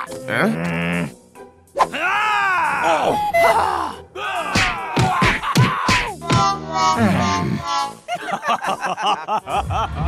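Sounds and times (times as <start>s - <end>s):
cartoon character voice groaning: 6.2s - 7.7s.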